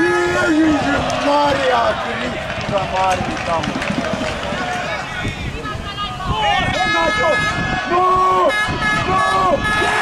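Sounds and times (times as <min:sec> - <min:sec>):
players and spectators shouting: 0:00.0 - 0:10.0.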